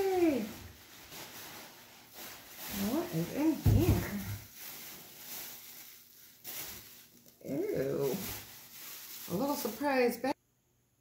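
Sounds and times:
plastic bags rustling: 0.0 - 10.4.

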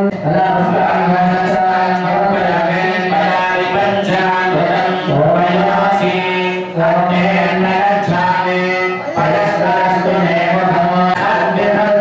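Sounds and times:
men chanting in monotone: 0.0 - 12.0.

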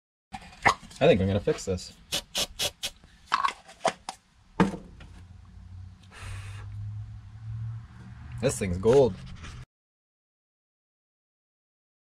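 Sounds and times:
brief hiss: 2.1 - 3.0
loud knock: 4.6 - 5.0.

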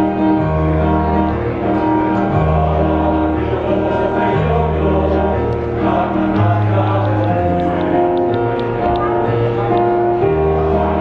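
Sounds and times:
bass line: 0.0 - 11.0
choir singing: 0.0 - 11.0
electronic keyboard: 0.0 - 11.0.

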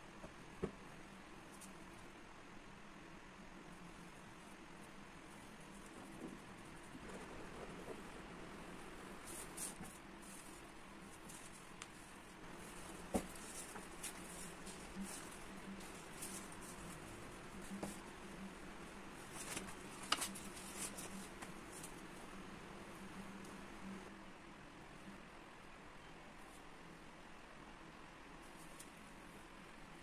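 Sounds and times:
faint room hum: 0.0 - 30.0
paper rustling: 19.2 - 22.0.

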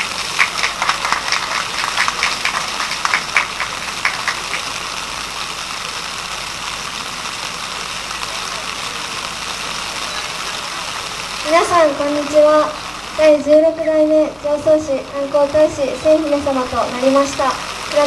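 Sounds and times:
hand clapping: 0.0 - 4.7
background hubbub: 0.0 - 18.0.

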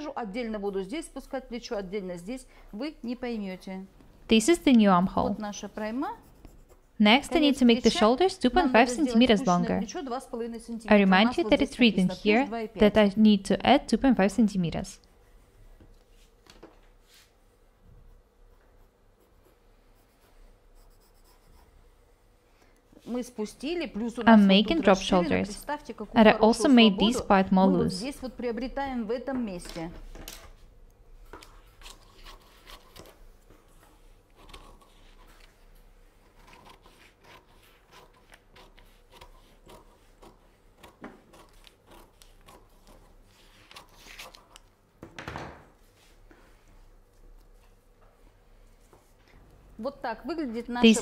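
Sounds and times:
pencil scratching on paper: 5.1 - 10.0, 18.0 - 21.9, 31.4 - 35.6, 36.2 - 44.6
scissors snipping paper: 36.3 - 43.0
paper rustling: 43.3 - 44.6.

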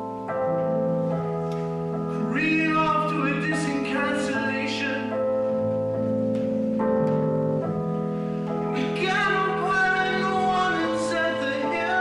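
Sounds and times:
keyboard piano chords: 0.0 - 12.0.

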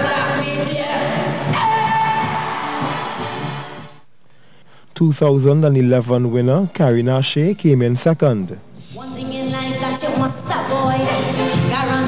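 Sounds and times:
woman singing into a microphone: 9.1 - 12.0.

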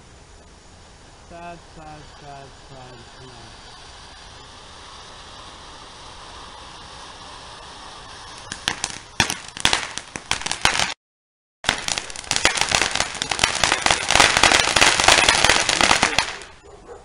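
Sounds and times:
firework fountain hissing: 0.0 - 11.0, 11.6 - 16.6
firework crackling pops: 1.8 - 11.0, 11.6 - 16.6.

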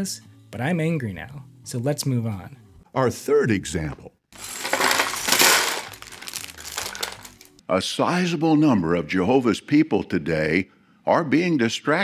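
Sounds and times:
plastic bag crinkling: 4.4 - 7.5.

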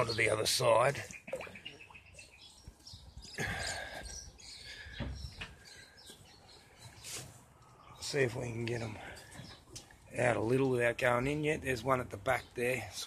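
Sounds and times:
faint bird chirping: 0.0 - 10.6.

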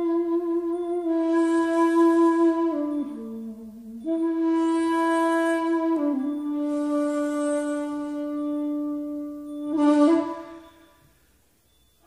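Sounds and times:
bamboo flute long note: 0.0 - 11.0.

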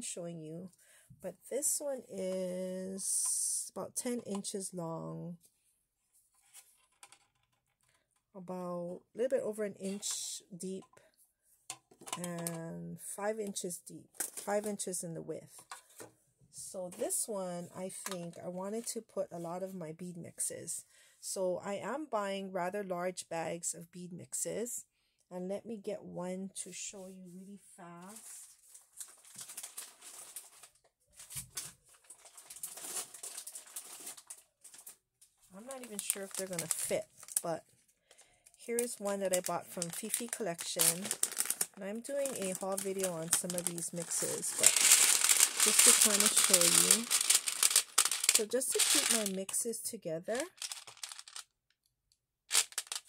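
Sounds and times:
plastic bags rustling: 28.1 - 35.0, 35.6 - 38.2, 38.8 - 49.5, 50.3 - 51.4, 52.5 - 53.0
plastic beads rattling: 35.6 - 37.6, 38.7 - 49.6, 50.3 - 51.5, 52.5 - 53.0.

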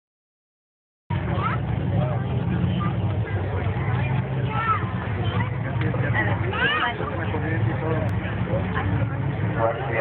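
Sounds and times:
people talking: 1.1 - 10.0
racing car engine rumbling: 1.1 - 10.0.

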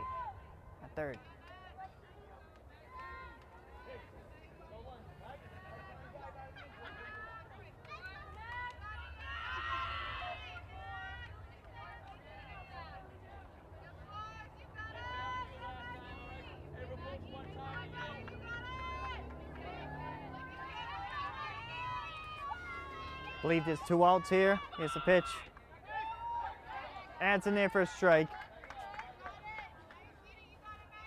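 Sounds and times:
girls calling and chattering: 2.3 - 31.0.

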